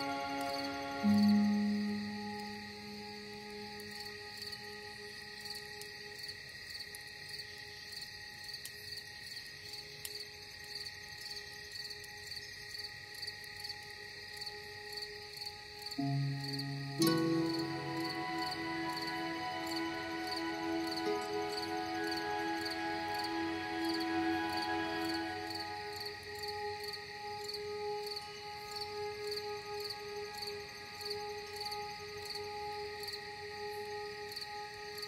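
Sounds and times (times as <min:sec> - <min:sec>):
crickets chirping: 0:00.0 - 0:35.0
soft ambient music: 0:00.0 - 0:35.0.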